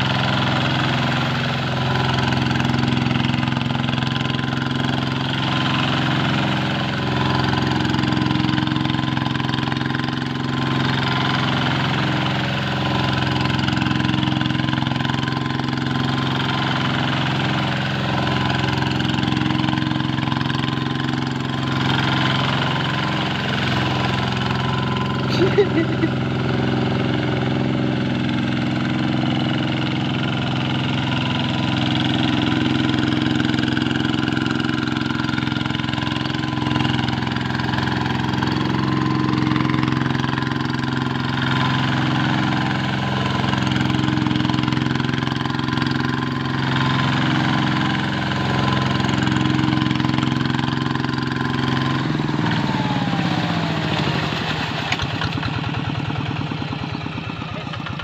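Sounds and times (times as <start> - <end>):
diesel tractor engine running: 0.0 - 58.0.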